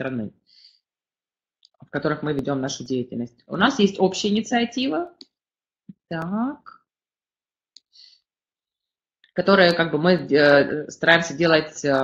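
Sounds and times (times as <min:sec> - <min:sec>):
woman's voice: 0:01.9 - 0:05.2, 0:06.0 - 0:06.8, 0:09.4 - 0:12.0.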